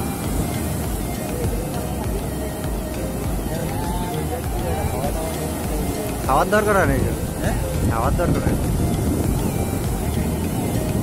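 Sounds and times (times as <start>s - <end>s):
faint voices: 0.0s - 11.0s
wind buffeting microphone: 0.0s - 11.0s.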